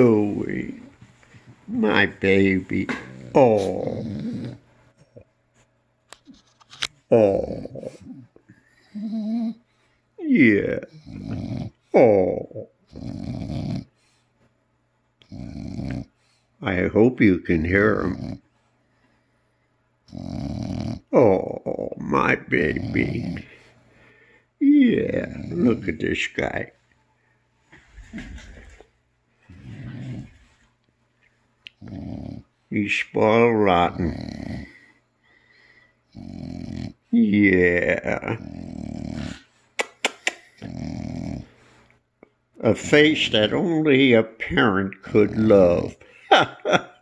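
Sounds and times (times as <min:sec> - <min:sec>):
dog grunting: 0:01.6 - 0:05.2, 0:07.1 - 0:09.6, 0:10.4 - 0:13.9, 0:15.2 - 0:16.2, 0:17.8 - 0:18.4, 0:20.1 - 0:23.7, 0:24.9 - 0:26.0, 0:27.9 - 0:28.9, 0:29.5 - 0:30.6, 0:31.8 - 0:32.6, 0:33.5 - 0:35.0, 0:36.1 - 0:39.5, 0:40.2 - 0:41.8.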